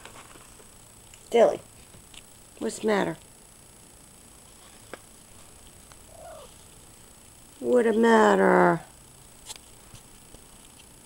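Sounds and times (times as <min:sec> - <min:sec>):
cat mewing: 0:06.1 - 0:06.6.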